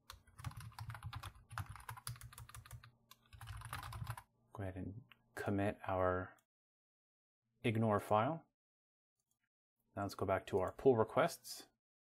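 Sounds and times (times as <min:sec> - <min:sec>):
typing on computer keyboard: 0:00.0 - 0:04.2.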